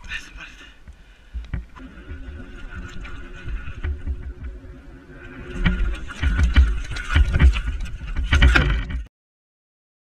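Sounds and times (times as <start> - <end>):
bike tyres rumbling on dirt: 1.4 - 9.1
wind on microphone: 1.4 - 9.1.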